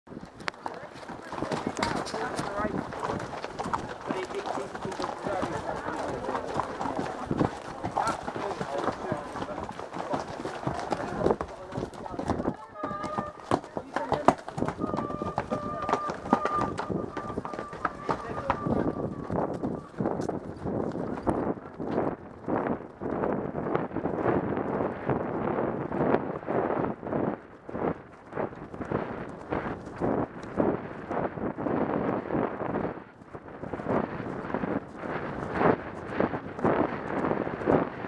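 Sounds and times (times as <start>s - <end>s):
horses' hooves on grass: 0.1s - 38.0s.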